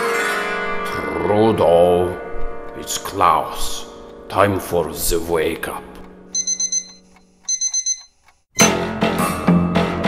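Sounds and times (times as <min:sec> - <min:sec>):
alarm clock beeping: 0:06.3 - 0:08.7.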